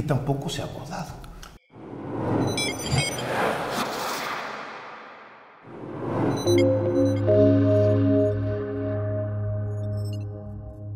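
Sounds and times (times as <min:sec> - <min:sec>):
noisy whoosh: 0:01.8 - 0:08.0.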